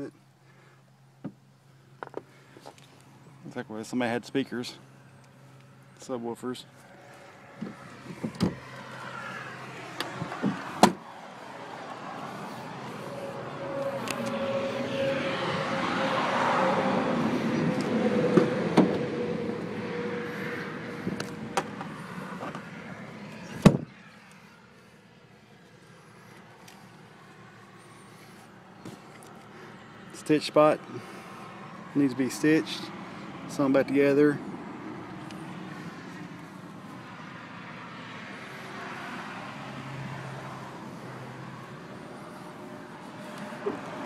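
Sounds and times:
vehicle passing by: 0:02.4 - 0:44.0.

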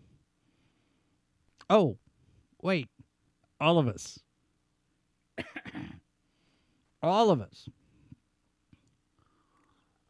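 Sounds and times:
man coughing: 0:05.4 - 0:06.0.

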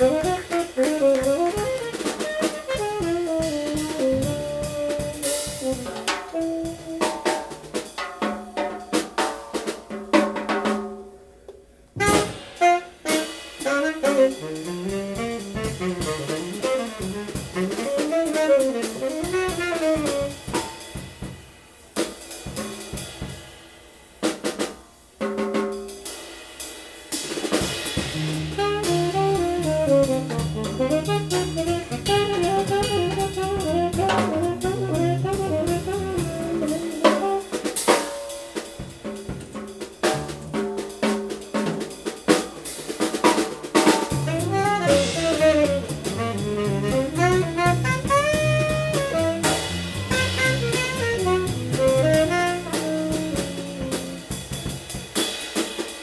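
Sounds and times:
tenor saxophone improvising: 0:00.0 - 0:07.4, 0:12.0 - 0:20.4, 0:28.2 - 0:37.8, 0:44.1 - 0:54.6
swinging drum kit: 0:00.0 - 0:56.0
acoustic double bass: 0:28.2 - 0:37.0, 0:44.2 - 0:52.3.

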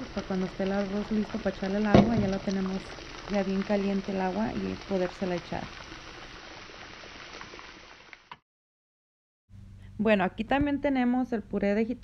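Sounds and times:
water boiling in a saucepan: 0:00.0 - 0:08.4.

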